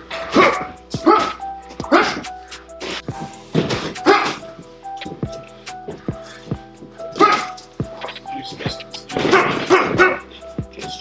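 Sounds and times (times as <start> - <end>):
background music: 0.0 - 11.0
gloved punches slapping: 3.1 - 6.0, 6.6 - 10.2.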